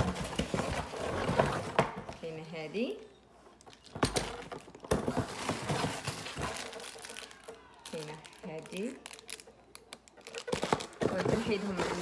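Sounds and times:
cardboard rustling: 0.0 - 2.2, 3.8 - 8.6, 10.1 - 12.0
plastic crinkling: 3.4 - 12.0.

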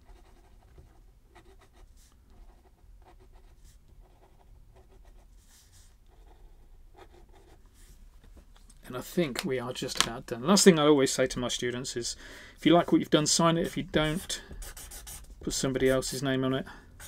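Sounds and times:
pen nib scratching on paper: 13.6 - 16.2.

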